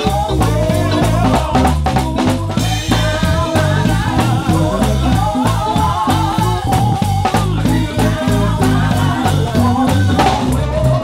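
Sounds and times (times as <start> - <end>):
drum kit beat: 0.0 - 11.0
keyboard: 0.0 - 11.0
stepping bass line: 0.0 - 11.0
wordless sung melody: 0.0 - 11.0.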